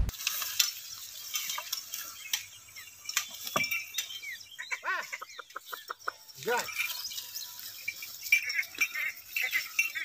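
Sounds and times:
chicken clucking: 4.6 - 6.3.

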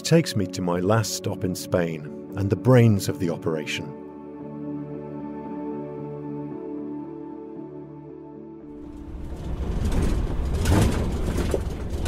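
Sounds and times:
car engine and road rumble: 8.8 - 12.0.

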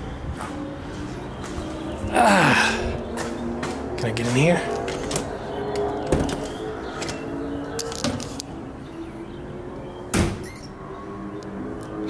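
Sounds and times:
metal door creaking tones: 4.3 - 8.4, 10.1 - 11.2.

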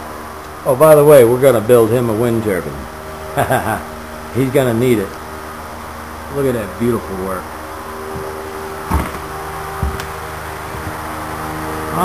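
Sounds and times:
machine hum: 0.0 - 12.0
dull thumps: 8.1 - 11.0.

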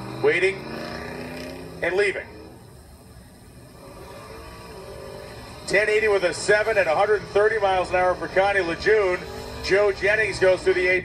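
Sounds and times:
distant race car engines: 0.0 - 11.0.

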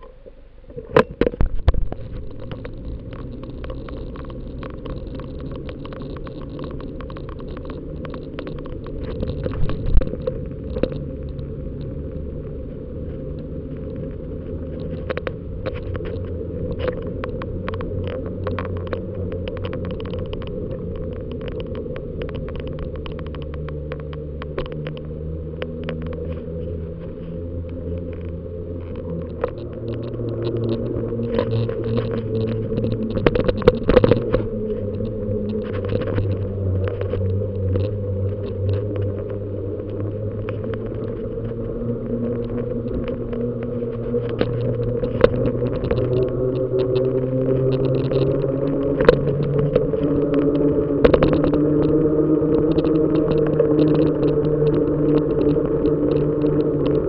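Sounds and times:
clicks and knocks from bumps: 0.0 - 57.0
low rumble of bicycle riding: 0.0 - 57.0.

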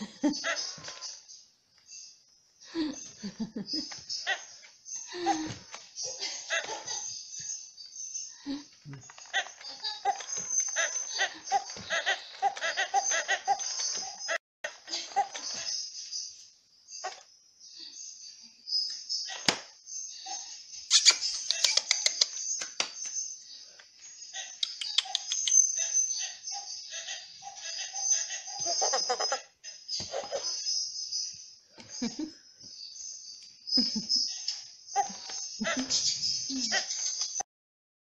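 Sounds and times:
toy chimpanzee laughing: 0.0 - 1.2, 2.7 - 7.2, 8.4 - 15.8, 24.3 - 30.7, 33.8 - 37.4
toy chimp chattering calls: 9.1 - 14.4, 24.4 - 29.5.

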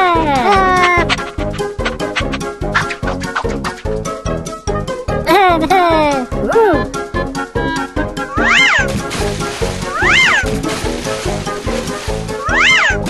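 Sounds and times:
upbeat cartoon music: 0.0 - 13.0.

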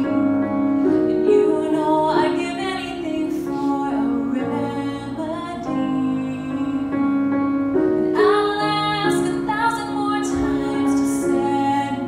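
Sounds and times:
woman singing slow song: 1.1 - 7.3, 8.1 - 12.0.

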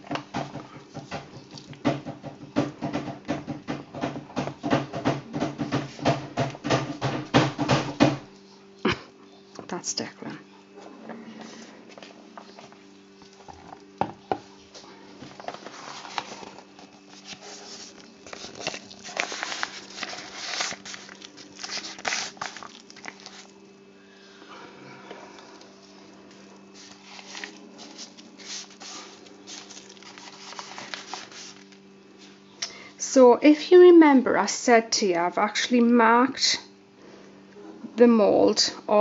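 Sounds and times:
steady low hum: 0.0 - 39.0
soft squishing: 10.8 - 32.4.

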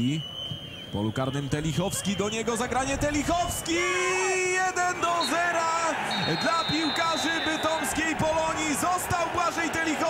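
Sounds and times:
commentator shouting: 3.6 - 10.0.

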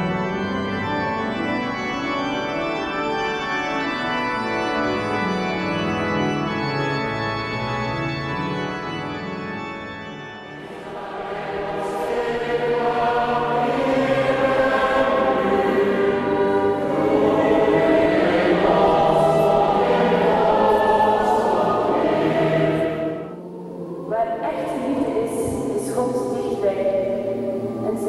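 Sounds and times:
sustained organ chord: 0.0 - 28.0
choir singing a hymn: 10.4 - 28.0.

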